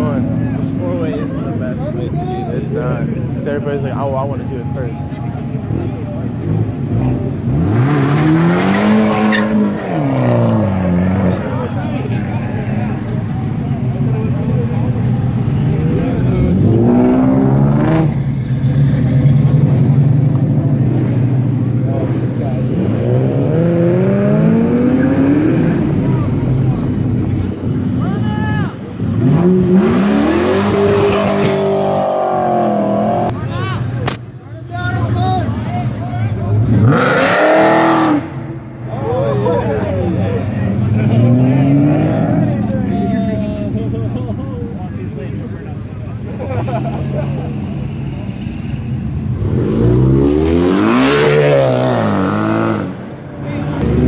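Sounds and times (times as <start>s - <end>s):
car engines revving and accelerating: 0.0s - 54.0s.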